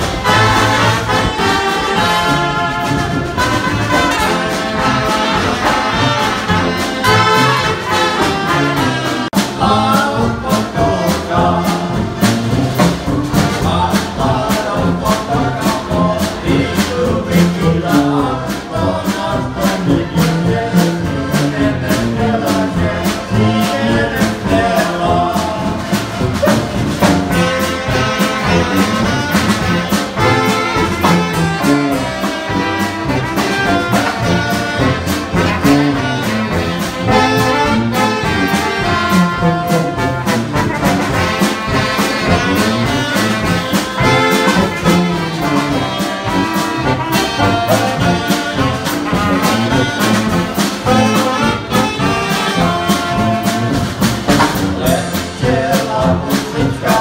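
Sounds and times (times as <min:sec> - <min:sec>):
brass band playing: 0:00.0 - 0:57.0
steady drum beat: 0:00.0 - 0:57.0.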